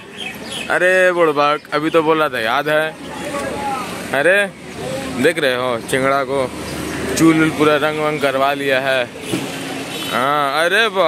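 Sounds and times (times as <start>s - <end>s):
city road traffic: 0.0s - 11.0s.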